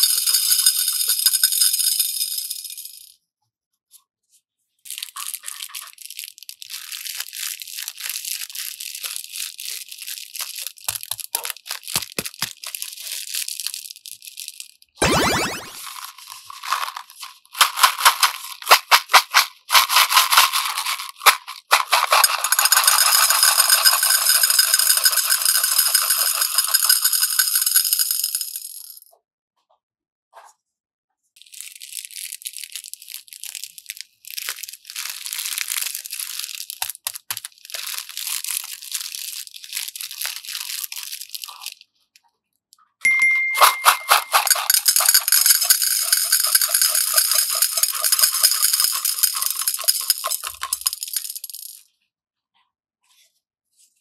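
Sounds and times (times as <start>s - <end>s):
plastic beads clattering into glass bowl: 0.0s - 3.1s, 4.9s - 29.0s, 31.4s - 41.8s, 43.1s - 51.9s
plastic bag rustling: 4.9s - 13.9s, 15.8s - 22.5s, 34.3s - 41.8s.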